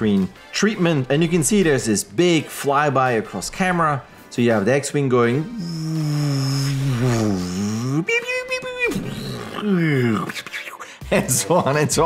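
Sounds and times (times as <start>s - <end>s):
man imitating spacecraft flyby: 5.4s - 8.1s.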